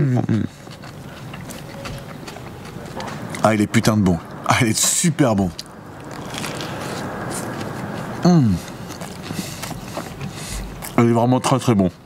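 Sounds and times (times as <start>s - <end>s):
person chewing food: 0.3s - 3.5s, 5.5s - 11.0s
faint crunches: 0.4s - 3.5s, 5.5s - 11.0s
steady rushing noise: 1.1s - 12.0s.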